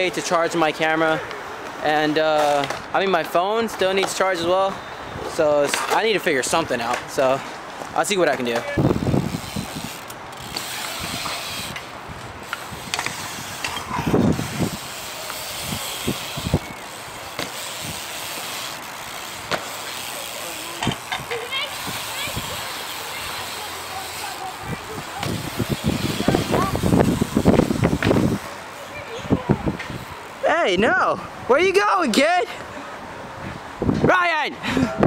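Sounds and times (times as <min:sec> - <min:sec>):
bike tyres rolling on concrete: 0:00.0 - 0:30.6
voices: 0:00.0 - 0:33.4
sharp knocks from landings: 0:17.3 - 0:17.6, 0:19.4 - 0:19.8.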